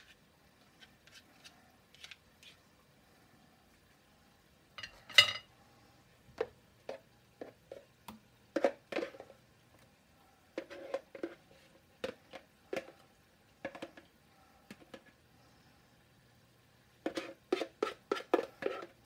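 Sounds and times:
utensil scraping a container: 0.0s - 2.6s, 10.6s - 11.7s, 17.0s - 19.0s.

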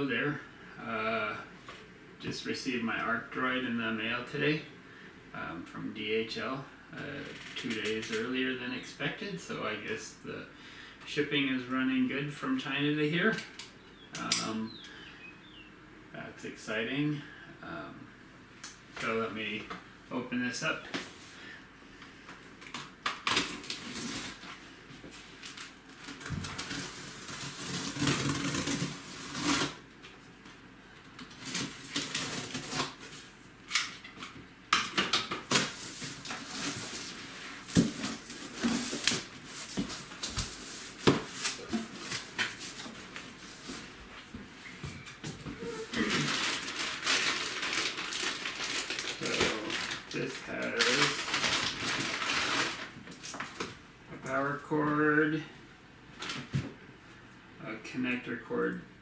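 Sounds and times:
plastic wrapping rustling: 22.6s - 29.8s, 31.1s - 33.3s, 35.2s - 53.8s
cardboard crackling and tearing: 23.2s - 24.5s, 25.4s - 29.8s, 31.3s - 33.1s, 45.6s - 53.7s.

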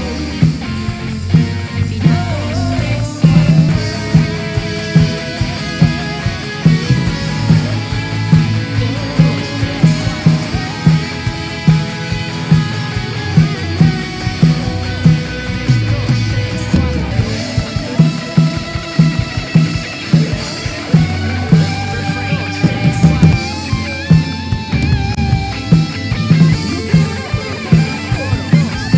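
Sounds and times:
rock band playing: 0.0s - 28.9s.

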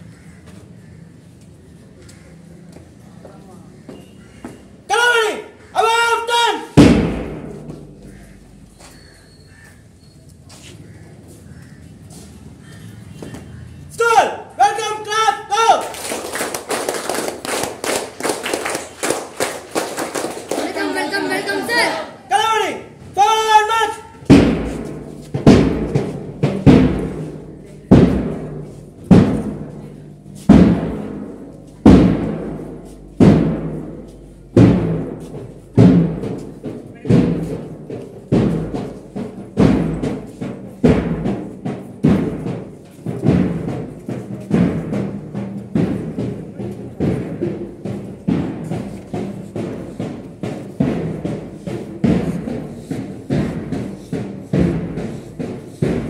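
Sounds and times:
deep drum beating: 6.8s - 8.8s, 24.2s - 56.0s
people clapping: 15.7s - 22.2s.

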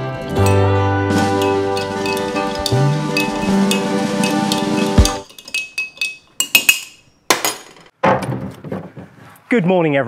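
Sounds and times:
background music: 0.0s - 5.2s
spoon clinking against ceramic mug: 0.4s - 7.1s.

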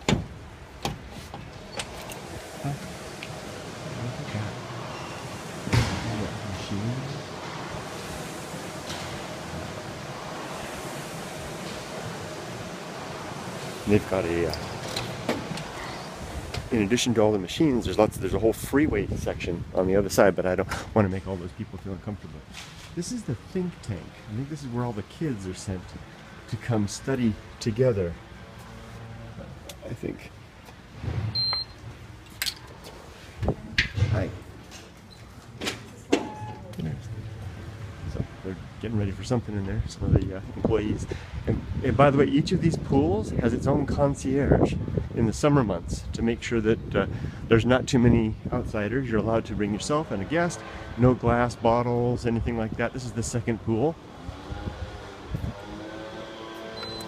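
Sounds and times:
high electronic beep: 36.2s - 36.7s.

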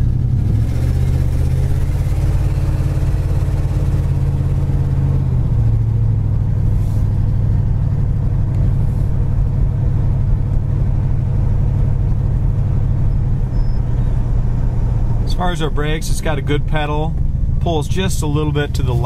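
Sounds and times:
car engine running: 0.0s - 19.0s
road noise: 0.0s - 19.0s.

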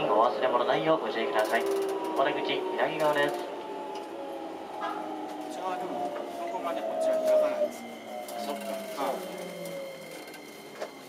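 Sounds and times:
train motors whining: 1.2s - 11.0s
faint steady high tone: 4.8s - 11.0s.

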